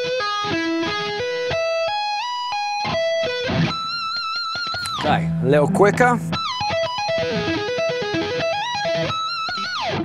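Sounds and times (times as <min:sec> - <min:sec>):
electric guitar lead lick: 0:00.0 - 0:10.0.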